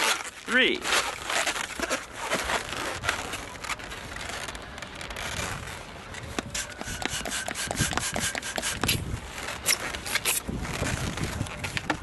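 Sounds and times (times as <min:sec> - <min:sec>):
balloons rubbing and squeaking: 0:00.0 - 0:12.0.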